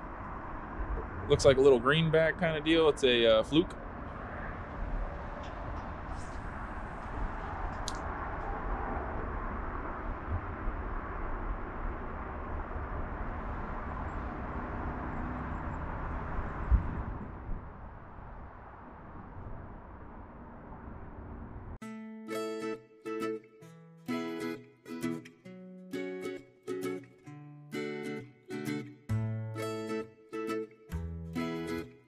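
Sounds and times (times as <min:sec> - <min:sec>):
wind on microphone: 0:00.0 - 0:01.8, 0:03.8 - 0:21.8
low rumble: 0:03.7 - 0:21.8
background music: 0:21.8 - 0:32.0.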